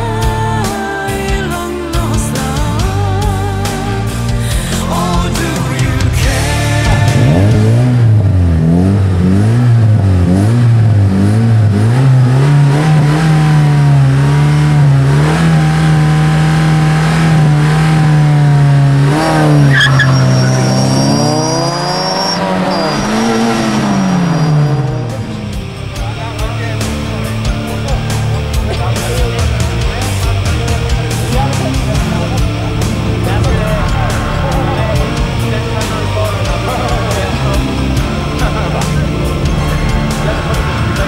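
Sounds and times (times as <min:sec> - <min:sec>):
car engine revving: 0:00.0 - 0:41.0.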